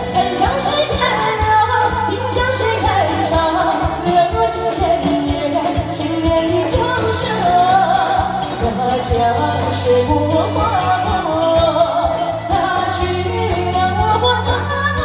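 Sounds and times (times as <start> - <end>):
backing music with drum beat: 0.0 - 15.0
woman singing into microphone: 0.0 - 15.0.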